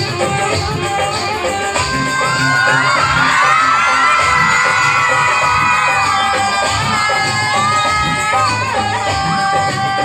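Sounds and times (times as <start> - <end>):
loud dance music: 0.0 - 10.0
children shouting and cheering: 1.7 - 10.0.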